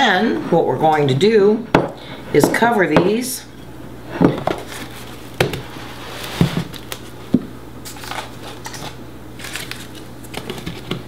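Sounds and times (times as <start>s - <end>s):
plastic crinkling: 7.8s - 11.0s.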